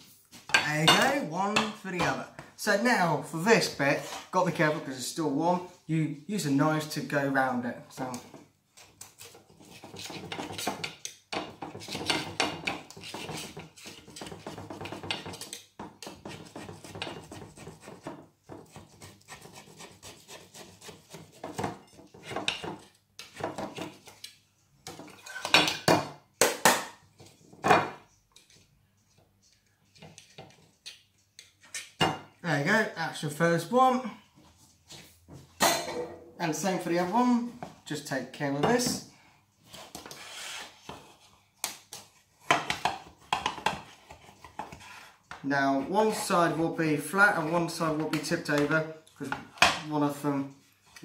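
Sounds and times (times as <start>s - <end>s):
knife scraping a cake tin: 8.8s - 24.4s.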